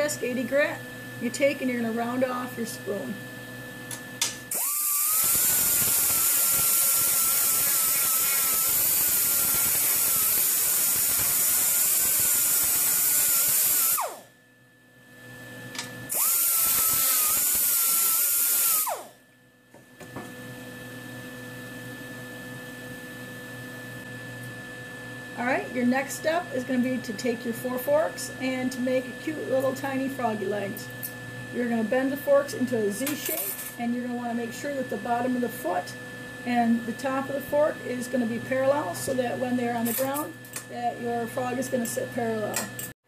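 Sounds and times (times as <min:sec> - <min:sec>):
air grinder whining: 0:04.5 - 0:14.3, 0:16.1 - 0:19.2.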